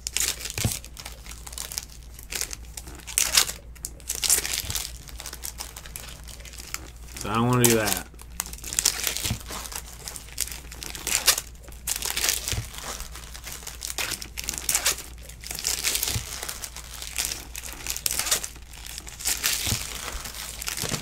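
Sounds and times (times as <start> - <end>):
foil wrappers crinkling and tearing: 0.0 - 21.0.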